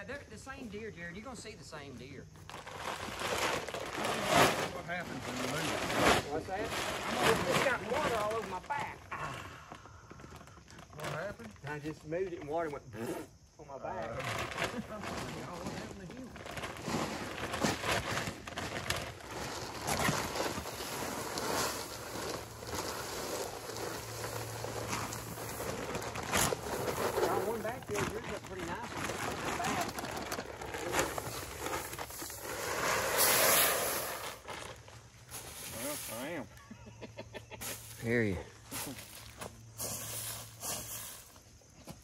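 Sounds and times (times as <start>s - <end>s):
corn scattering on leaves: 2.4s - 9.2s, 14.1s - 36.6s, 37.6s - 41.4s
voices: 26.9s - 31.4s.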